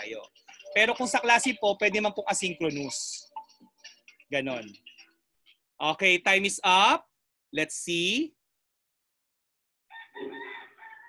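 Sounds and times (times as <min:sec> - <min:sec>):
rooster crowing: 0:09.9 - 0:11.0.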